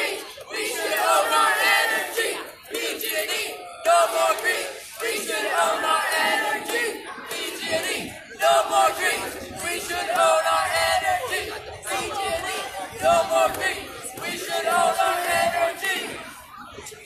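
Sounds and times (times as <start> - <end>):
crowd chanting: 0.0 - 17.0.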